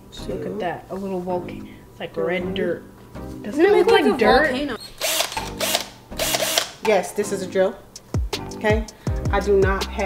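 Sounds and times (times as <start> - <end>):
cordless drill whirring: 5.0 - 6.8.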